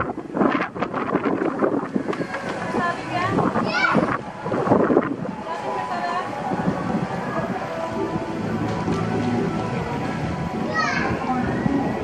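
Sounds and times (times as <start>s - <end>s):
wind noise on microphone: 0.0s - 12.0s
children's voices: 2.1s - 4.7s, 8.9s - 12.0s.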